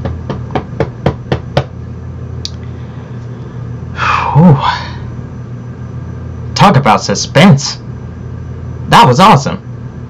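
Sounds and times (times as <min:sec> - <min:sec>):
sharp knocks: 0:00.0 - 0:01.8.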